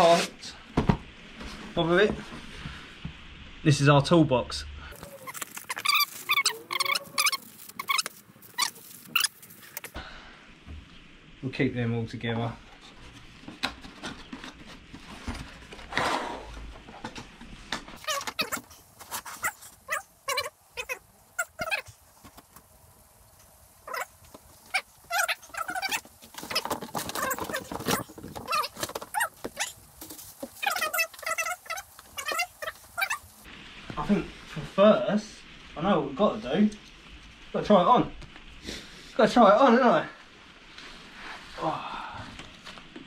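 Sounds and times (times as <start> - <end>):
short warbling squeaks: 5.0 - 9.4, 24.7 - 29.8.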